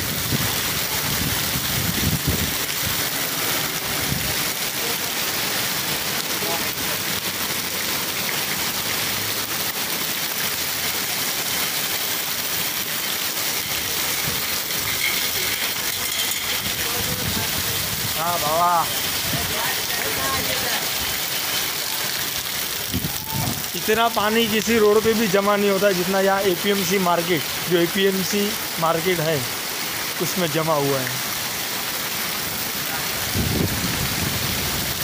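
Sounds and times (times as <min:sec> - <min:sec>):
heavy rain splashing into water: 0:00.0 - 0:35.0.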